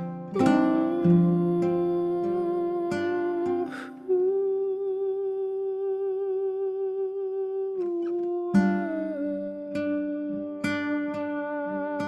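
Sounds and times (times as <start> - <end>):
classical guitar plucked: 0.0 - 12.0
man humming: 0.4 - 12.0.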